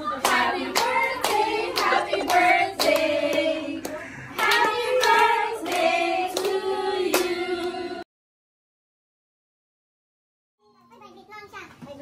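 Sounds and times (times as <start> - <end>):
women singing long notes: 0.0 - 8.0
handclaps: 0.2 - 7.7.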